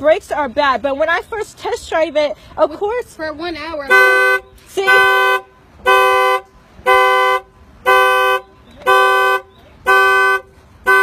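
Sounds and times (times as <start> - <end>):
car horn honking in alarm pattern: 3.8 - 11.0.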